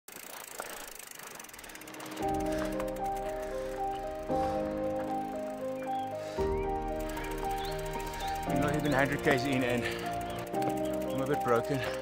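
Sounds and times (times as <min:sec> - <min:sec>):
bicycle freehub clicking: 0:00.1 - 0:12.0.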